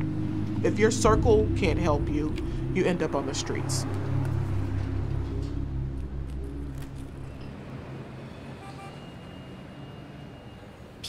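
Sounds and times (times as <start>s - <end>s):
low music chord: 0.0s - 7.7s
distant traffic hum: 0.0s - 11.0s
faint car horn toot: 8.6s - 10.5s.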